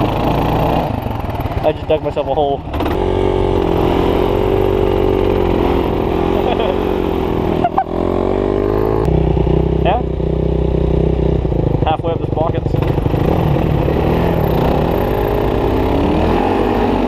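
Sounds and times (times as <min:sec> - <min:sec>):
dirt bike engine running: 0:00.0 - 0:17.0.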